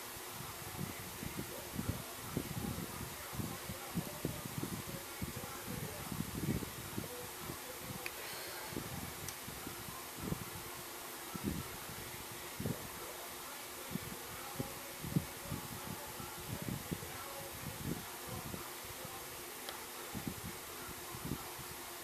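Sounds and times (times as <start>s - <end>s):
background hiss: 0.0s - 22.0s.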